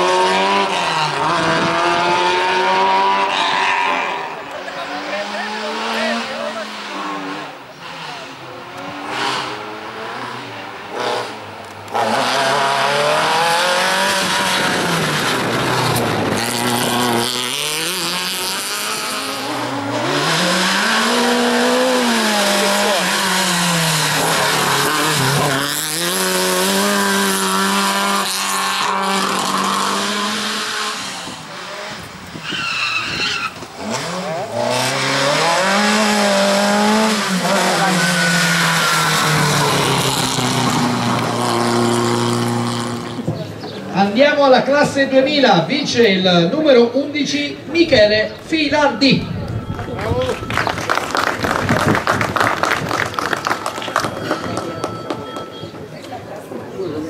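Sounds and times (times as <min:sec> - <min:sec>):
race car engine revving: 0:00.0 - 0:57.0
tyre squeal: 0:32.3 - 0:35.5, 0:37.2 - 0:41.7.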